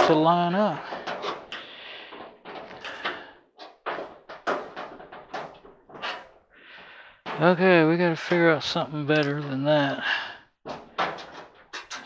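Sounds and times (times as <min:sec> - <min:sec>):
knocks and scrapes on sheet metal: 0:00.0 - 0:06.5, 0:07.2 - 0:07.7, 0:10.6 - 0:12.0.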